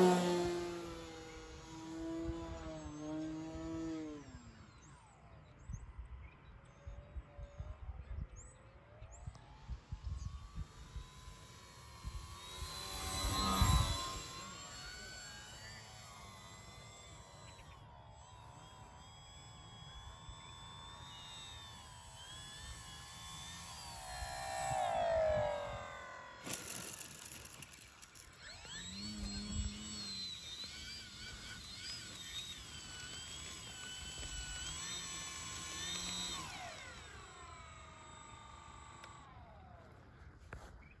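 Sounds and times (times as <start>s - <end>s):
electric motor and propeller whining: 0.0s - 41.0s.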